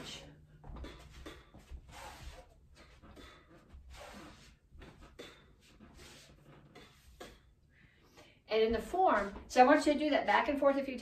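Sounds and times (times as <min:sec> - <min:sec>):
feet shifting on a mat: 0:00.0 - 0:07.5.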